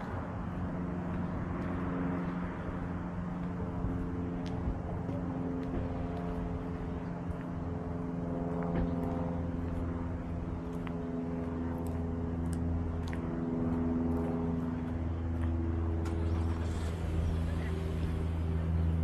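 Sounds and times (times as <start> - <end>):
low mechanical hum: 0.0 - 19.0.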